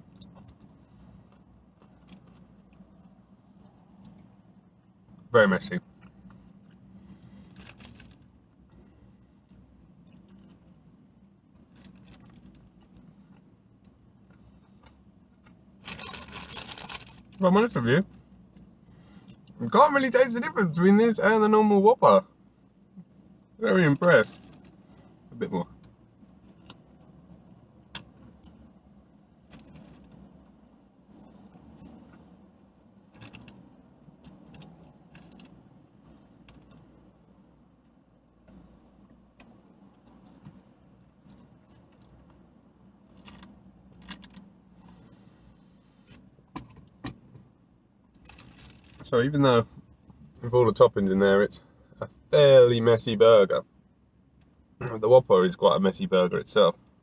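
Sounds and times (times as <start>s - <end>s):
burger packaging rustling: 7.1s - 8.3s, 11.6s - 12.9s, 15.8s - 17.4s, 48.2s - 49.1s
soft clicks and crinkles: 11.5s - 17.4s, 24.0s - 24.8s, 33.1s - 37.1s, 39.3s - 44.9s.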